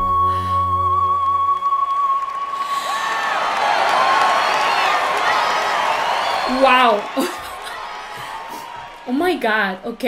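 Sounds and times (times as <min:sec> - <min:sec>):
audience cheering and applauding: 0:01.1 - 0:10.0.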